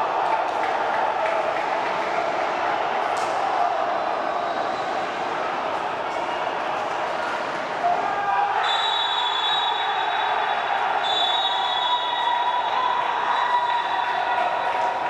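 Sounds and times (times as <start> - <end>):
crowd of voices shouting: 0.0 - 15.0.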